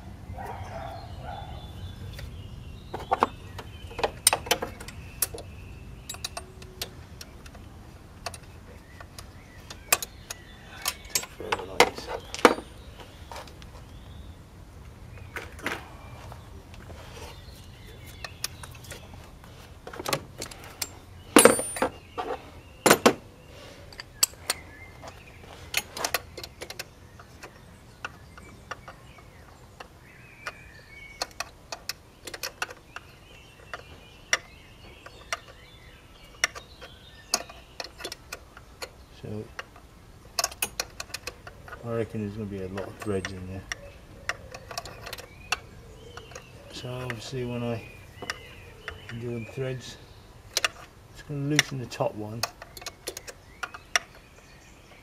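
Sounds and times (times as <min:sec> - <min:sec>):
metal hand tools clinking: 0:20.4 - 0:22.0.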